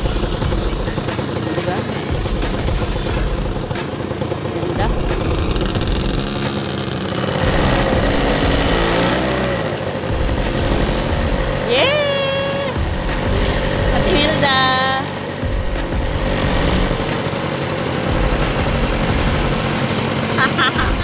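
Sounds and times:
people's voices: 0:00.0 - 0:03.7, 0:04.4 - 0:05.3, 0:10.2 - 0:17.2
motorbike engines running: 0:00.0 - 0:21.0.

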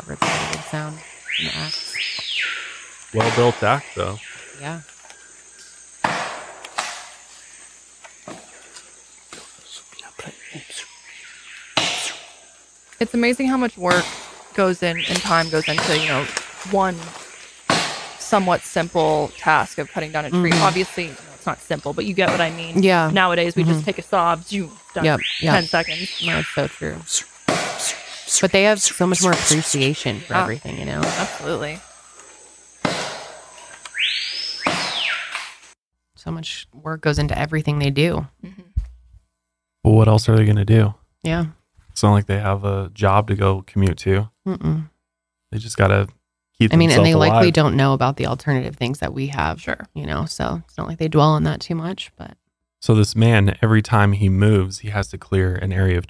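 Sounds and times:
insects droning: 0:00.0 - 0:38.2.

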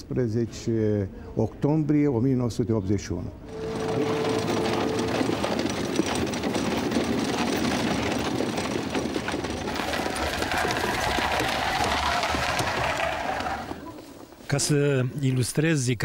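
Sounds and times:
carriage wheels rattling: 0:03.5 - 0:14.3
hooves on snowy road: 0:03.5 - 0:14.3
harness rattling: 0:03.5 - 0:14.4.

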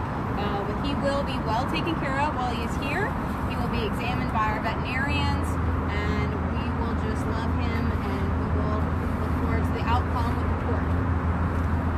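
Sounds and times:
road traffic rumble: 0:00.0 - 0:11.9.

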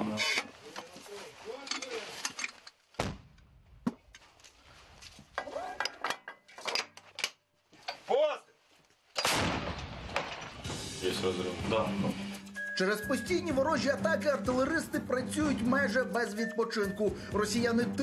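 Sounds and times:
loud gun blast: 0:09.2 - 0:10.8.

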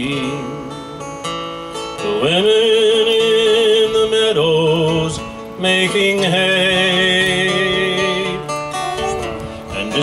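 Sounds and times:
acoustic guitar strumming: 0:00.0 - 0:10.0
person singing: 0:02.0 - 0:05.2, 0:05.8 - 0:10.0.

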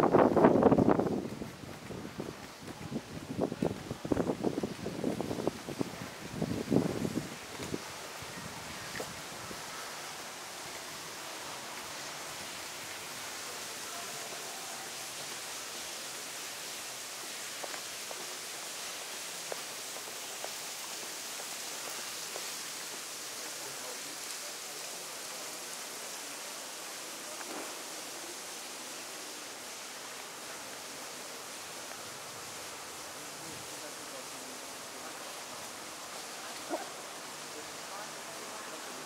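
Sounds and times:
city street ambience hiss: 0:00.0 - 0:39.0.

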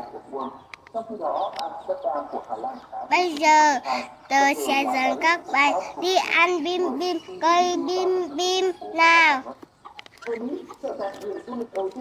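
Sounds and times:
chickens clucking: 0:00.0 - 0:12.0
sharp clicks: 0:00.7 - 0:01.7.

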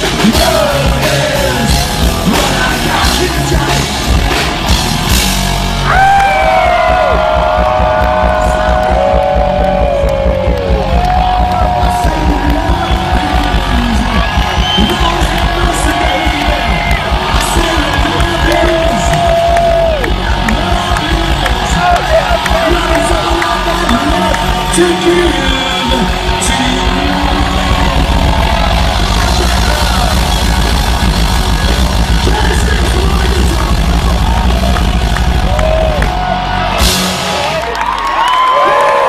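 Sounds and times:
live rock band playing: 0:00.0 - 0:38.4.

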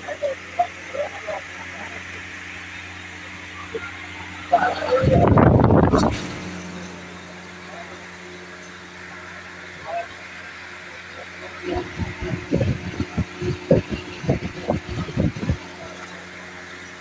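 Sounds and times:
fan air buffeting microphone: 0:00.0 - 0:17.0
steady low hum: 0:00.0 - 0:17.0.

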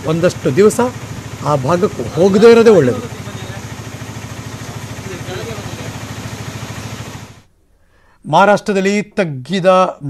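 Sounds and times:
vehicle engine throbbing: 0:00.0 - 0:07.5.

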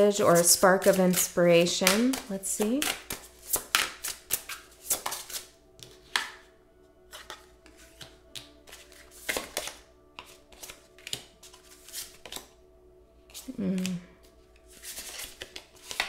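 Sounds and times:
soft background music: 0:00.0 - 0:16.0
cards shuffling: 0:00.2 - 0:06.5, 0:07.1 - 0:12.5, 0:14.6 - 0:16.0.

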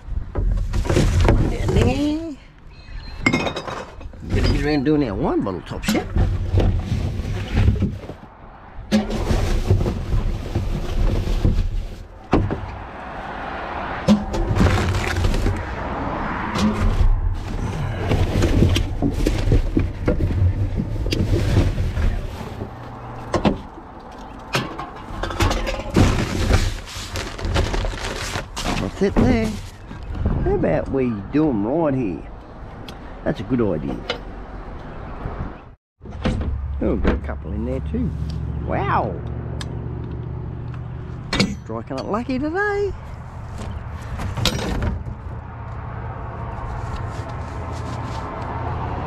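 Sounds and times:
cans and containers clunking: 0:23.2 - 0:27.8
paper and plastic rustling: 0:25.8 - 0:29.9.

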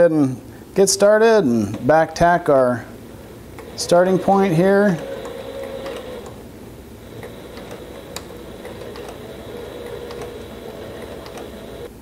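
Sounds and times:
sewing machine motor hum: 0:03.3 - 0:12.0
sewing machine stitch ticks: 0:03.6 - 0:06.4, 0:07.1 - 0:11.9.

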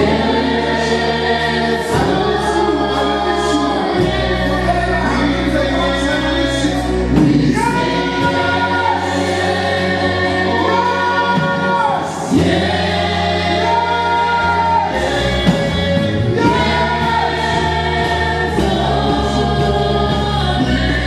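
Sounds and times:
choir singing gospel: 0:00.0 - 0:21.0.

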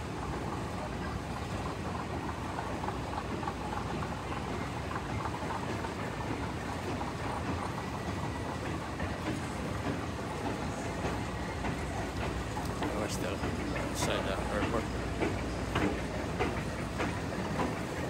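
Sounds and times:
moving walkway rumble and rattle: 0:00.0 - 0:18.0
busy concourse din: 0:07.0 - 0:18.0.

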